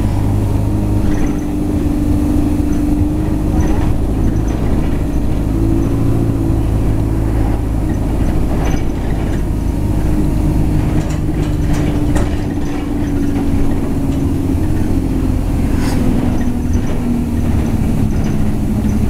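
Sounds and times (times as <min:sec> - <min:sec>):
bus diesel engine drone: 0:00.0 - 0:19.0.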